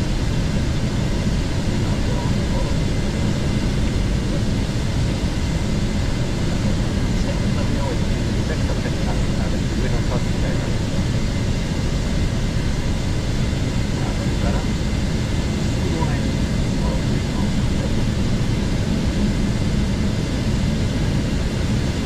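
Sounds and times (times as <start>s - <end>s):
airflow rushing over cockpit: 0.0s - 22.0s
jet engines droning: 0.0s - 22.0s
faint voices: 1.0s - 5.2s, 6.0s - 11.4s, 13.7s - 19.2s.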